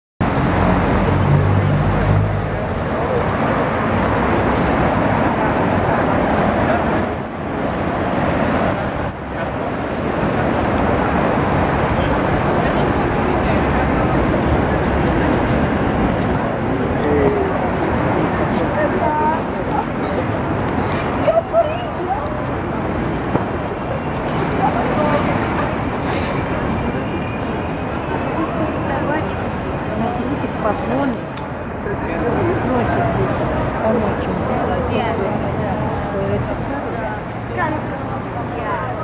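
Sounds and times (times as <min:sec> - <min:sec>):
passers-by talking: 0:00.2 - 0:39.0
traffic noise: 0:00.2 - 0:39.0.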